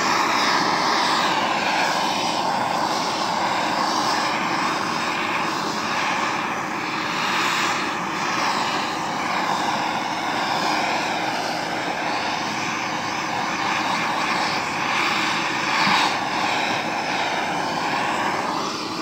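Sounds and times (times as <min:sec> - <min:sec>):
gas torch hissing: 0:00.0 - 0:19.0.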